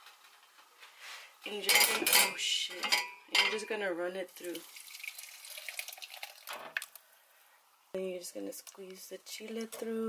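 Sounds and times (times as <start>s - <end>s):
thick sauce pouring and splattering: 4.6s - 7.0s.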